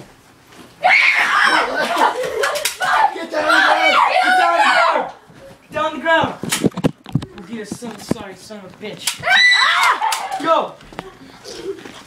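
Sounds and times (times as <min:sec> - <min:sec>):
voices shouting and yelling: 0:00.8 - 0:06.4, 0:09.0 - 0:10.8.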